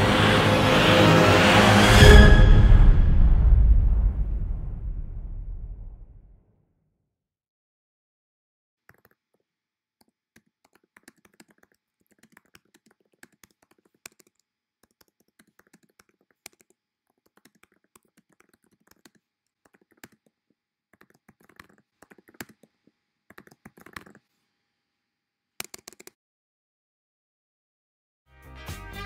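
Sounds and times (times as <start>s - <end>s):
typing on computer keyboard: 8.9s - 9.4s, 10.0s - 24.3s, 25.6s - 26.2s.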